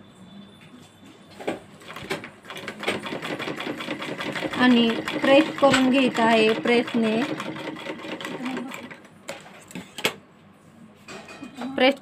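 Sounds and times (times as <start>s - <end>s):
sewing machine stitching: 1.8s - 9.0s.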